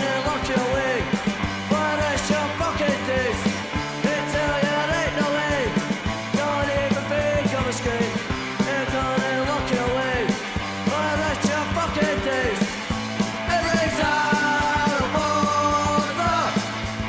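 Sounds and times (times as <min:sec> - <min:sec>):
bass: 0:00.0 - 0:17.0
drums keeping a steady beat: 0:00.0 - 0:17.0.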